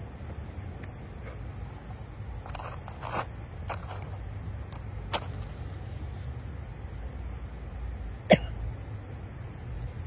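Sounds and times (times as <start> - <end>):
match scraping on matchbox: 2.4 - 4.2.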